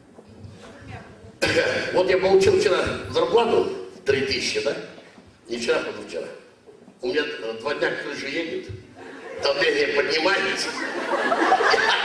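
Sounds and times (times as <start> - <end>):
man coughing into a microphone: 1.4 - 2.0.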